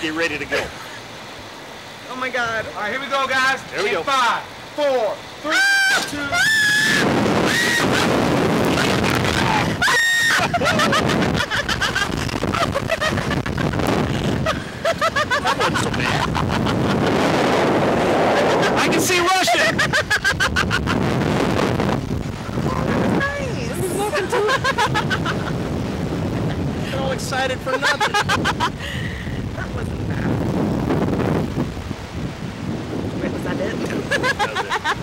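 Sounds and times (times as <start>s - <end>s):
riders screaming and yelling: 5.1s - 17.2s
wind rushing on microphone: 5.9s - 35.0s.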